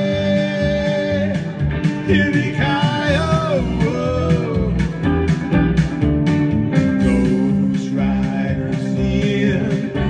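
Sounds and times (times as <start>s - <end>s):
electric guitar strumming: 0.0s - 10.0s
low bass pulse: 0.2s - 10.0s.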